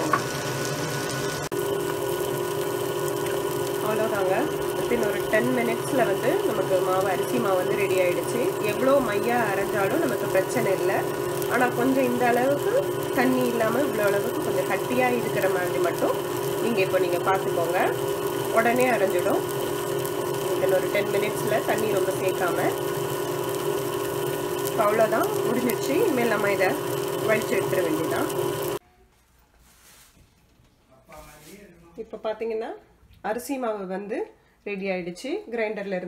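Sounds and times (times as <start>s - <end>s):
wet grinder humming: 0.0s - 28.8s.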